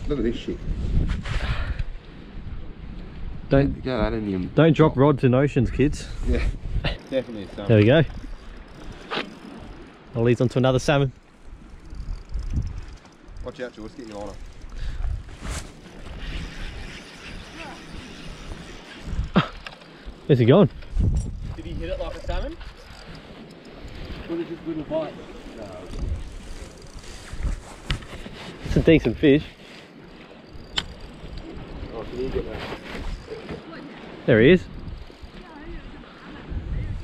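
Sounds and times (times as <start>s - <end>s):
wind buffeting microphone: 0.0s - 37.0s
fishing reel clicking: 6.9s - 24.4s, 25.0s - 28.2s, 29.0s - 33.5s, 34.6s - 35.8s
sharp click: 30.7s - 31.0s.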